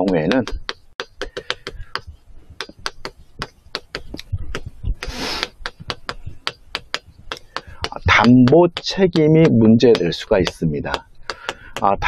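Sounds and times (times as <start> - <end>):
chalk scratching on blackboard: 0.0 - 11.9.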